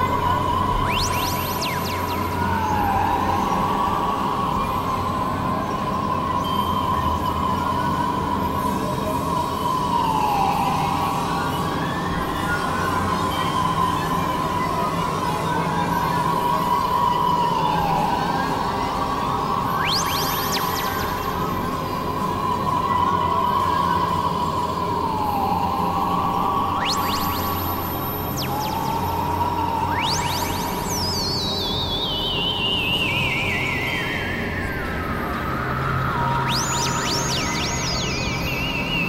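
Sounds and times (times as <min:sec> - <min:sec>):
synthesizer drone gliding tone: 0:00.0 - 0:39.0.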